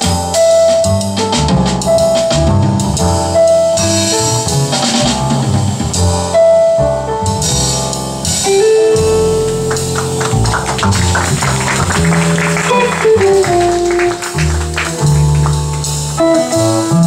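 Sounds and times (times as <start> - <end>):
drum kit cymbals: 0.0 - 6.5, 7.2 - 17.0
digital piano: 0.0 - 17.0
upright bass line: 0.0 - 17.0
electric guitar melody: 8.5 - 17.0.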